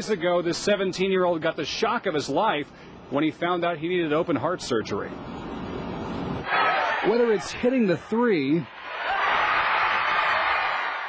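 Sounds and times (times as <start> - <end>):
crowd cheering: 6.4 - 11.0.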